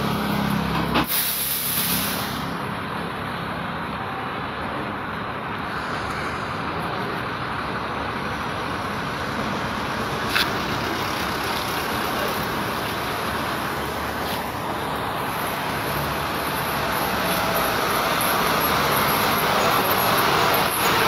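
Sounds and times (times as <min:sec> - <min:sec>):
air escaping from tyre valve: 0:01.0 - 0:02.6.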